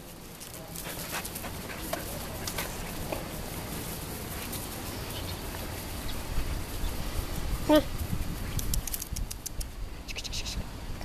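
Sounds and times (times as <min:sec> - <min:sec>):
dog panting: 0:00.5 - 0:05.3.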